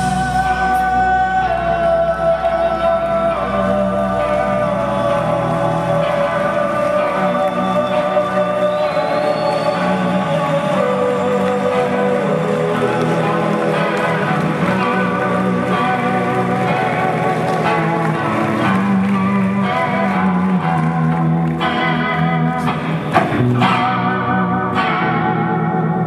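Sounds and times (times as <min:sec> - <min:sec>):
guitar chords ringing: 0:00.0 - 0:26.0
sharp guitar strumming: 0:00.0 - 0:26.0.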